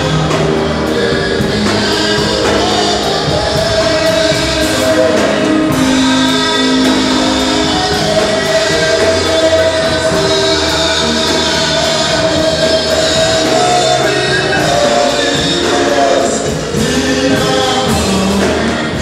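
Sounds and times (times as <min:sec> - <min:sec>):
gospel singing with instruments: 0:00.0 - 0:19.0.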